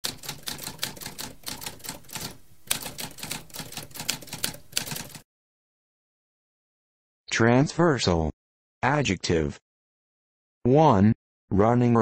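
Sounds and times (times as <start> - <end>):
manual typewriter typing: 0.0 - 5.2.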